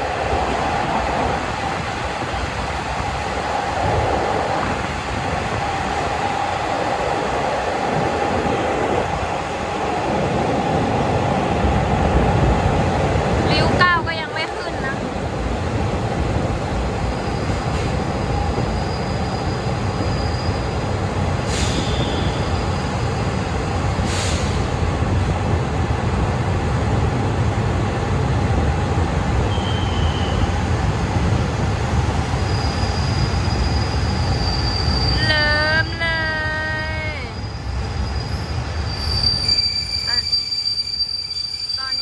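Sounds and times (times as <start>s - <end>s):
train wheels rumbling on rail: 0.0s - 42.0s
high wheel squeals: 18.5s - 20.8s, 21.5s - 23.4s, 32.4s - 35.7s, 37.2s - 42.0s.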